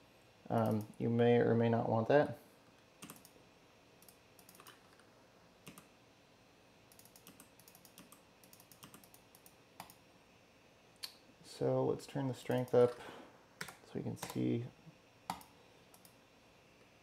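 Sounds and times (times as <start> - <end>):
keyboard typing: 3.0 - 3.4, 4.0 - 5.0, 5.6 - 5.9, 6.9 - 10.0.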